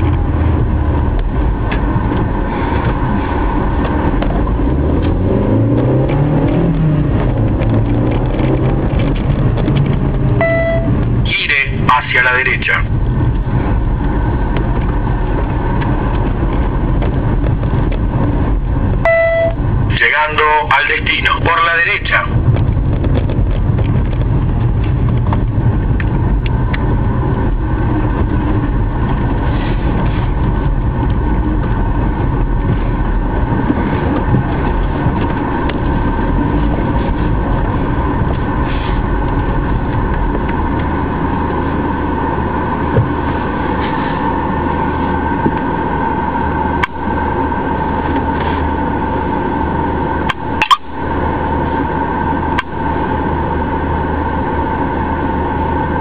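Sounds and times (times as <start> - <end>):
car engine and road rumble: 0.0 - 56.0.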